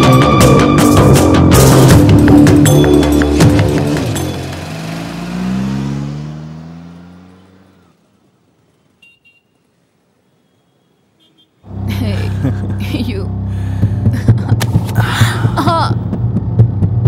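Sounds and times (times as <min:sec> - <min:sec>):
background music: 0:00.0 - 0:06.1, 0:11.7 - 0:17.0
car accelerating past: 0:03.8 - 0:08.0.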